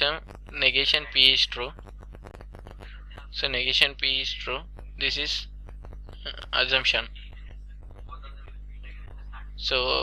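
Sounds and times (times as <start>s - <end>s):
low electrical hum: 0.0s - 10.0s
man muttering softly: 6.2s - 10.0s.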